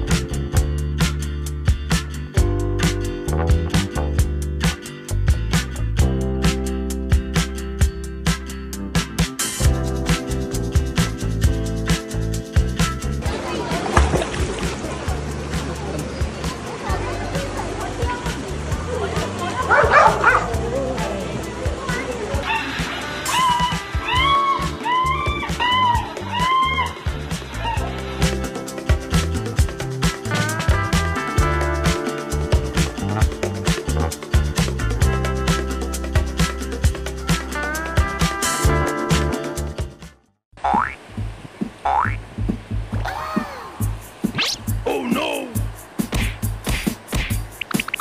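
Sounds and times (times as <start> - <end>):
background music: 0.0 - 41.0, 41.9 - 47.7
rising boing sound effects: 40.6 - 41.0, 41.8 - 42.2.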